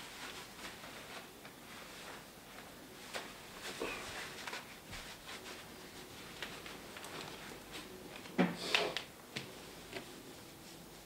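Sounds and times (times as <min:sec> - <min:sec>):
clothing rustling: 0:00.0 - 0:08.4.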